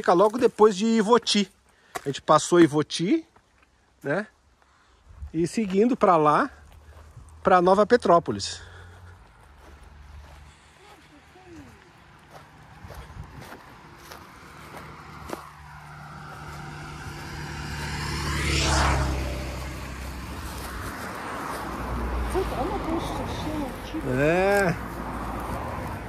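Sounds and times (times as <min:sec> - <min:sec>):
vehicle passing by: 0:06.1 - 0:26.0.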